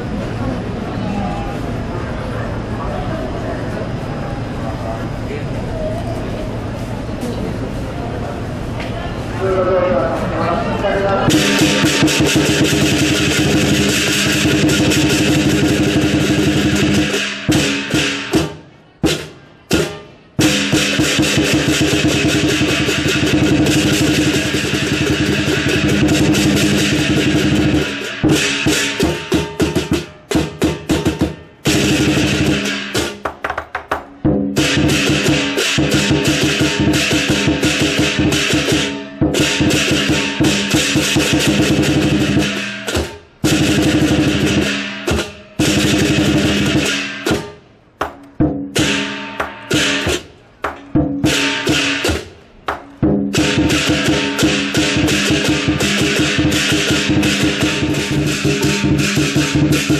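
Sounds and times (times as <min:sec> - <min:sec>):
large drum beaten in rolls: 0:11.1 - 0:59.9
gong ringing: 0:11.2 - 0:18.2, 0:53.3 - 0:59.9
crashing cymbals: 0:11.3 - 0:33.2, 0:34.6 - 0:47.6, 0:48.8 - 0:50.3, 0:51.2 - 0:52.4, 0:53.3 - 0:59.9.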